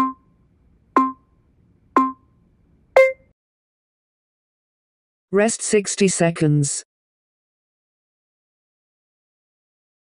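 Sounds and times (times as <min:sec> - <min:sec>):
timer countdown beeps: 0:00.0 - 0:00.3, 0:01.0 - 0:01.3, 0:02.0 - 0:02.3, 0:03.0 - 0:03.3.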